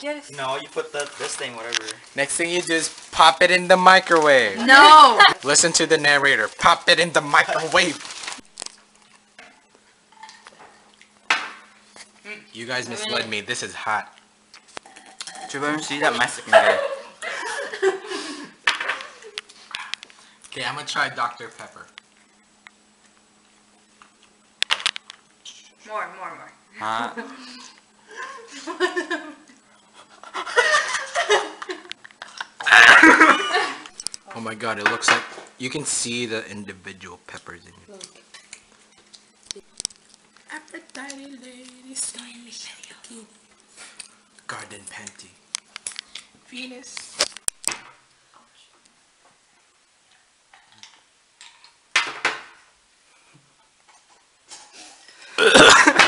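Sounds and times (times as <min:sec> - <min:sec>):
dishware clattering: 0:14.9 - 0:16.8.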